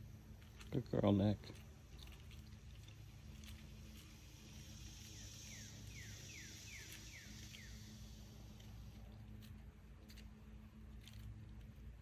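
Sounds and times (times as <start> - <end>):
steady high hiss: 0.0 - 10.6.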